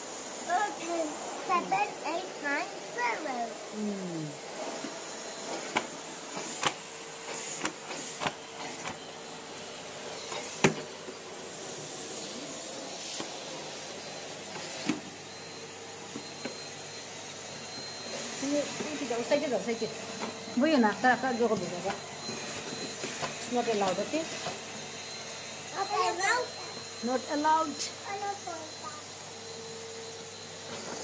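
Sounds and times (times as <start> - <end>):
vacuum cleaner running: 0.0 - 31.0.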